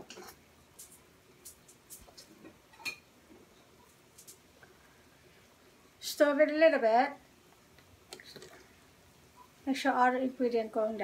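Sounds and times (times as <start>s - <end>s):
kitchen utensils and dishes clinking: 2.7s - 3.1s.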